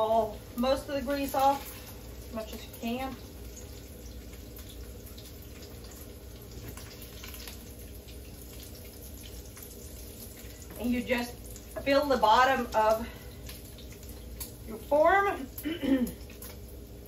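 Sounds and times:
bacon sizzling in a frying pan: 0.0s - 17.0s.

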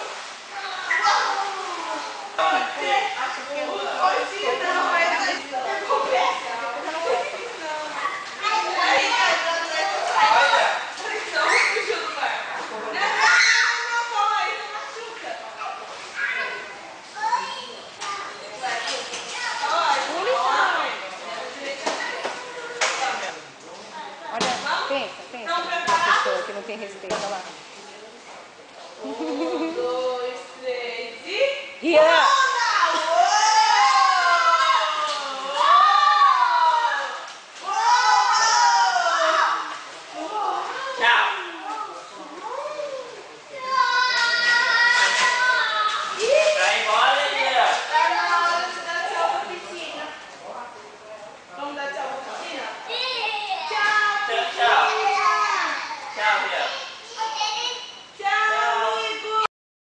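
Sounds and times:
young children calling out: 0.6s - 2.2s, 13.0s - 14.2s, 32.2s - 39.7s, 42.4s - 46.4s.

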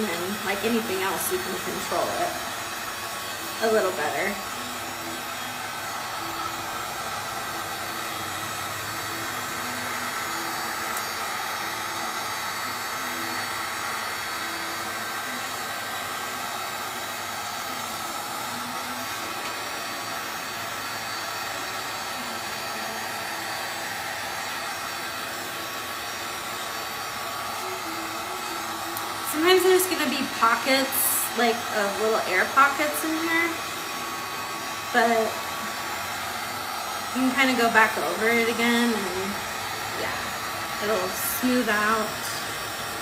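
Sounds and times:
heat gun blowing with whine: 0.0s - 43.0s.

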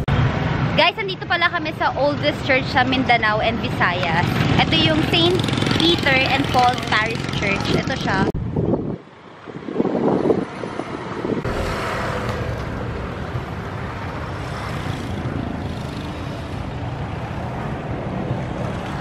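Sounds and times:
road vehicle rumbling hiss: 11.5s - 17.7s.

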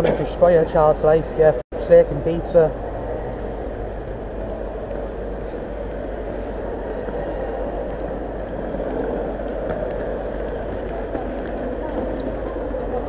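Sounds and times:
urban traffic rumble: 0.0s - 13.0s.

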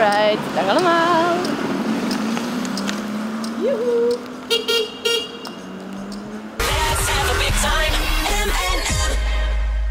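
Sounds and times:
vehicle horn beeping: 4.4s - 5.7s.

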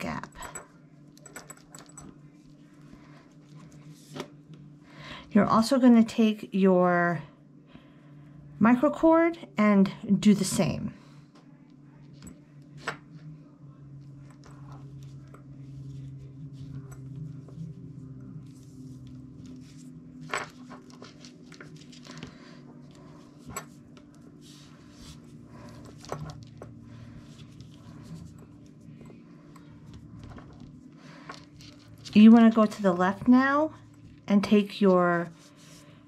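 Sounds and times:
steady low hum: 0.0s - 36.0s
cord rustling: 18.4s - 33.3s.

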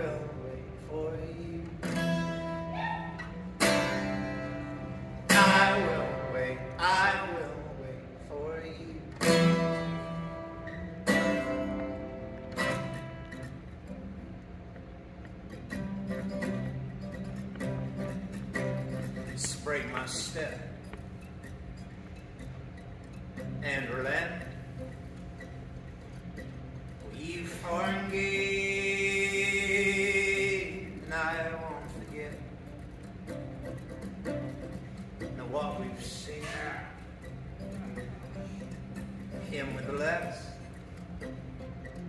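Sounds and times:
acoustic guitar chords: 0.0s - 42.0s.

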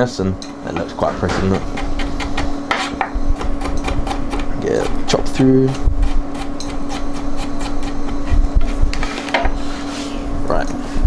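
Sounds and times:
knife chopping on cutting board: 0.8s - 5.0s.

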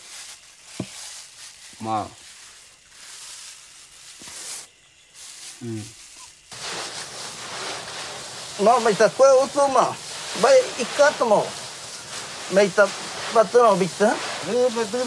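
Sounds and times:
steady soft hiss: 0.0s - 15.0s
rushing noise: 6.5s - 15.0s.

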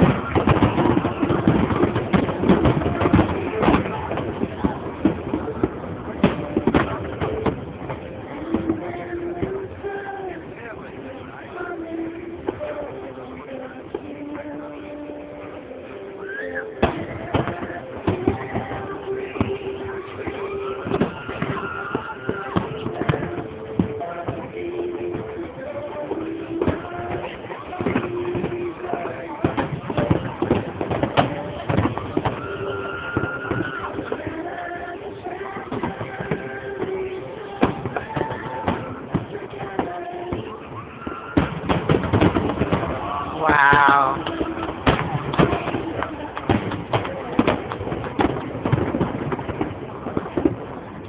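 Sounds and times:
crowd chatter: 0.0s - 51.0s
fireworks bursting: 0.0s - 51.0s.

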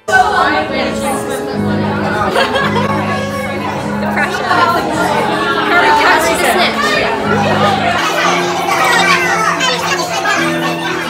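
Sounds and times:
group talking over each other: 0.0s - 11.0s
music with held notes: 0.0s - 11.0s.

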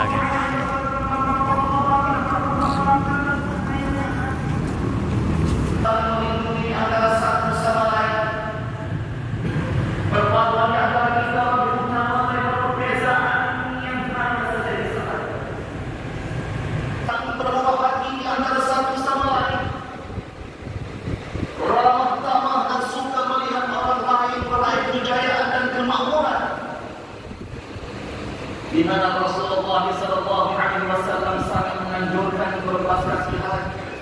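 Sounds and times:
man preaching over loudspeakers: 0.0s - 4.2s, 5.8s - 8.8s, 10.1s - 15.6s, 17.1s - 20.1s, 21.6s - 26.9s, 28.7s - 34.0s
low steady rumble: 0.0s - 33.7s.

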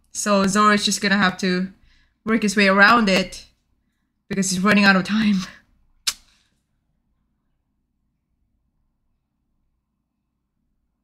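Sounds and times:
brief sharp click: 6.0s - 6.4s.

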